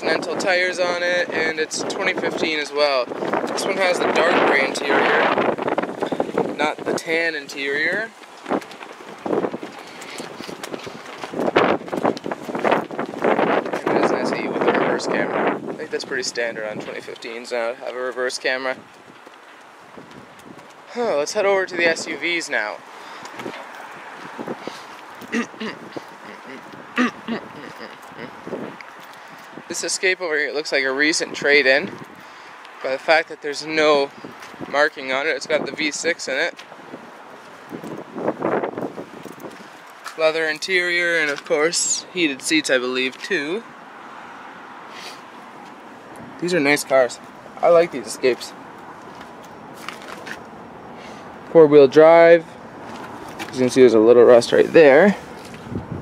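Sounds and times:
wind noise on microphone: 0.0s - 45.1s, 46.0s - 51.4s, 52.6s - 56.0s
outdoor background noise: 0.0s - 56.0s
person coughing: 25.3s - 25.9s, 27.0s - 27.9s
faint voice sounds: 25.3s - 28.4s.

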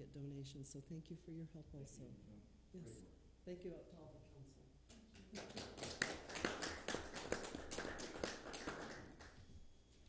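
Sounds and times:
small group applauding: 5.0s - 9.5s.

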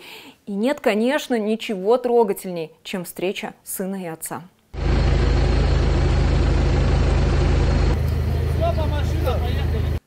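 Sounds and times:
vehicle engine running: 4.8s - 10.0s
voices: 8.2s - 10.0s.

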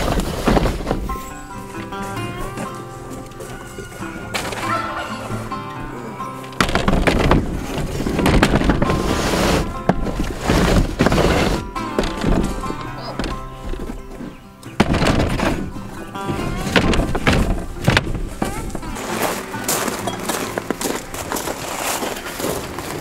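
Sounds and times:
background music: 0.0s - 23.0s
plastic crates rattling and clattering: 0.0s - 23.0s.

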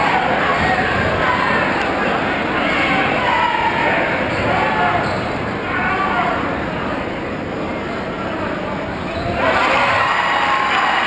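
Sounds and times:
crowd voices and shouts echoing: 0.0s - 11.0s.

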